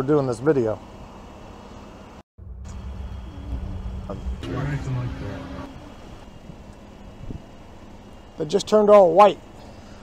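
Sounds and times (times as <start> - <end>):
car wash rumble from inside car: 2.6 - 6.1.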